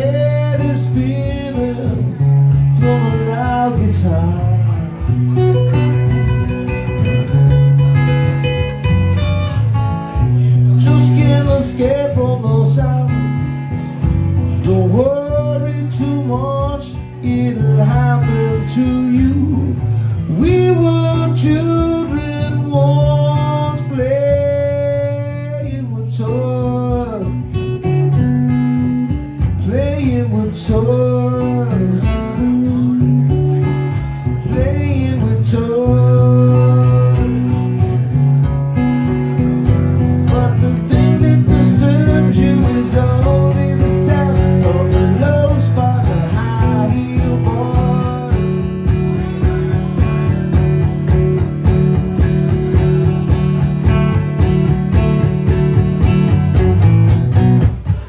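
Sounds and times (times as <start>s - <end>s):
blues acoustic guitar: 0.0s - 58.0s.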